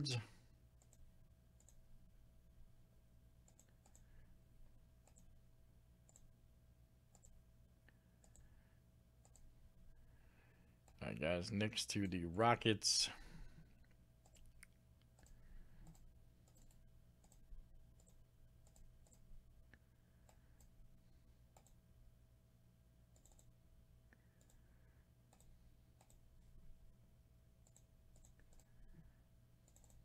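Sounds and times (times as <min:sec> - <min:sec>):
computer mouse and keyboard clicks: 0:00.8 - 0:01.8, 0:03.4 - 0:04.2, 0:05.0 - 0:05.4, 0:06.0 - 0:06.3, 0:07.1 - 0:07.4, 0:08.2 - 0:08.5, 0:09.2 - 0:09.5, 0:13.9 - 0:19.3, 0:21.5 - 0:21.8, 0:23.1 - 0:23.6, 0:24.4 - 0:24.6, 0:25.3 - 0:26.5, 0:27.6 - 0:29.0, 0:29.6 - 0:30.0.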